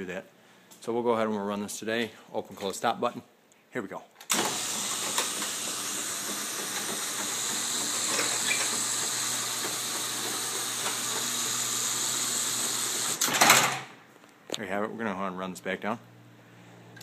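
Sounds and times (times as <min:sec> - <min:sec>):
door rolling up tracks: 0:04.3 - 0:13.9
garage door motor hum: 0:04.3 - 0:14.0.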